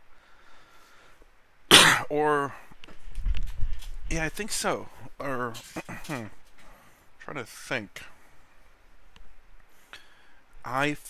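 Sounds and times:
man coughing: 1.7s - 2.1s.

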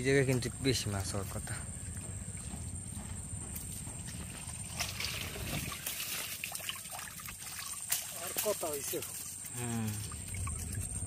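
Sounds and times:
muddy water sloshing: 0.0s - 11.0s
splash: 4.6s - 11.0s
water pouring off a trap: 4.8s - 11.0s.

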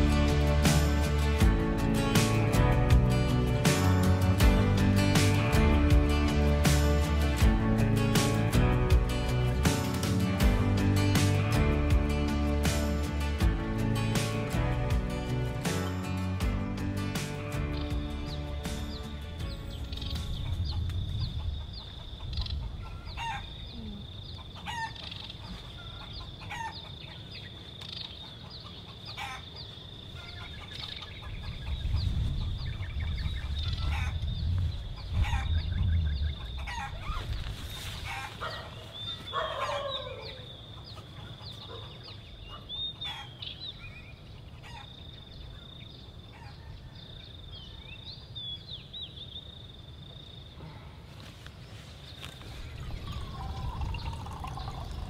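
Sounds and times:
birds calling: 17.3s - 55.0s
roosters crowing: 22.7s - 23.6s, 36.5s - 37.2s, 38.0s - 40.5s
low rumble: 32.0s - 36.6s.

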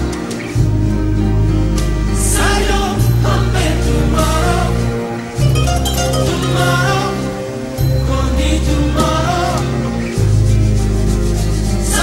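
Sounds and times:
music with singing voices: 0.0s - 12.0s.

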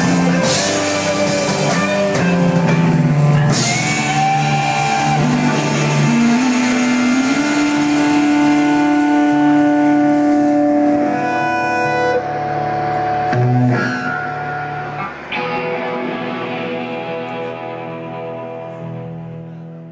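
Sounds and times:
rock band playing live: 0.0s - 19.9s
sustained electric guitar chords: 0.0s - 19.9s.

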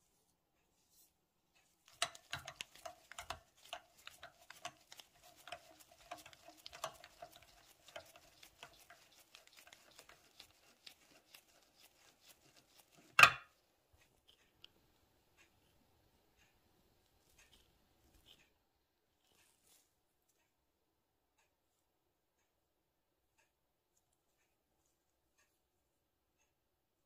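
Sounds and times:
thread tap clicking and creaking: 1.6s - 10.4s
faint steady squeak: 15.4s - 20.6s.

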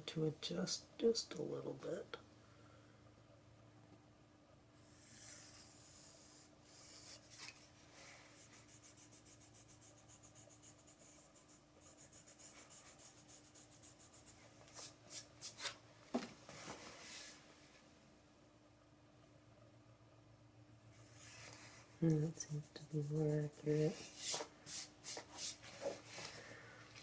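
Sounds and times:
pencil scratching on wood: 4.8s - 7.5s, 8.4s - 15.3s.

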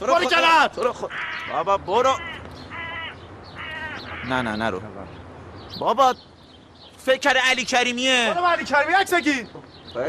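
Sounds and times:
man shouting: 0.0s - 0.7s
crow cawing: 0.9s - 4.6s.

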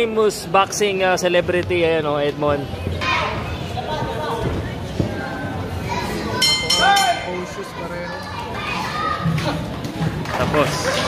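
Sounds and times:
crowd shouting and cheering: 5.9s - 11.0s
boxing ring bell: 6.4s - 7.5s.

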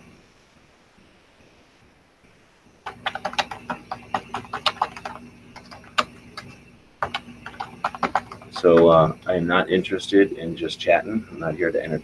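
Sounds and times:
typing on computer keyboard: 2.8s - 9.1s.

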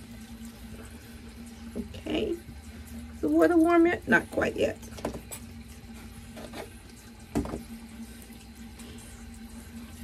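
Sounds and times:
tap running into basin: 0.0s - 9.6s
knock: 7.3s - 7.6s.

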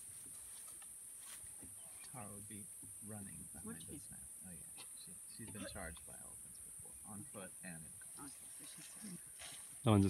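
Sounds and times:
steady high hiss: 0.0s - 10.0s.

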